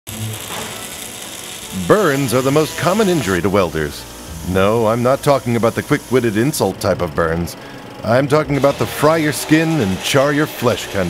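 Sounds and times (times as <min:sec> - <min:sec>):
welding arc crackling and hissing: 0:00.1 - 0:07.6, 0:08.3 - 0:11.0
man's voice: 0:01.8 - 0:11.0.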